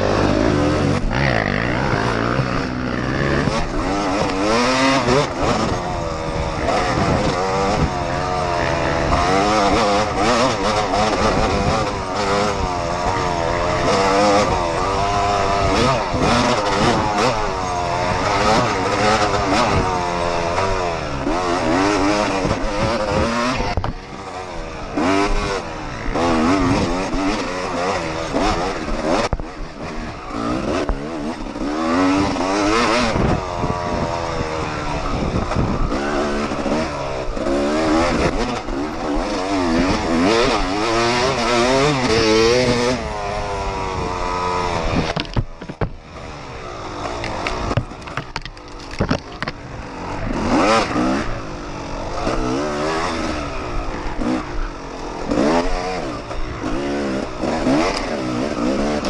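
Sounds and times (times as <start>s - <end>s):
dirt bike engine revving: 0.0s - 59.0s
wind noise: 0.0s - 59.0s.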